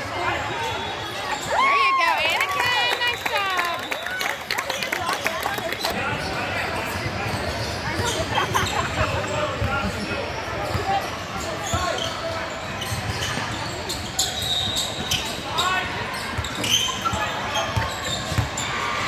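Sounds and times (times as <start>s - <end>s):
voices of players and spectators: 0.0s - 19.0s.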